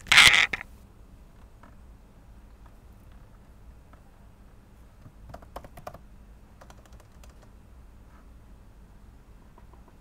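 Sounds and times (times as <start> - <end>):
loud creaking scrape: 0.0 - 0.6
computer keyboard clicks: 5.2 - 6.0, 6.6 - 7.5.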